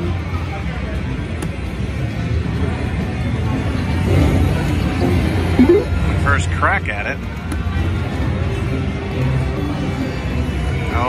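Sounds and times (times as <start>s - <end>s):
murmur of machines and people: 0.0s - 11.0s.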